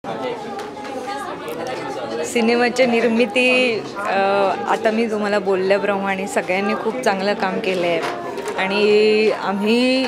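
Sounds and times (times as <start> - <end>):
background chatter of people: 0.0 - 10.0.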